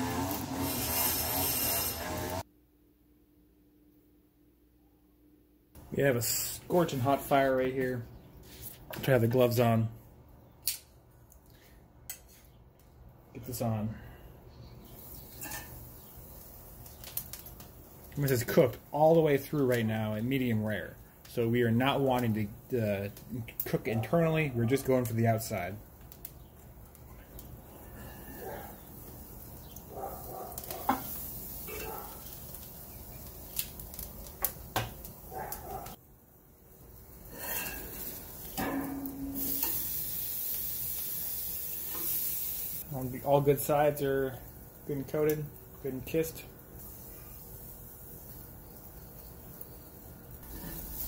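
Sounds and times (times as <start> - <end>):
steak sizzling on a grill: 0.0 - 2.0, 14.8 - 22.0, 25.0 - 35.9, 36.6 - 51.0
tongs clinking: 37.5 - 39.9.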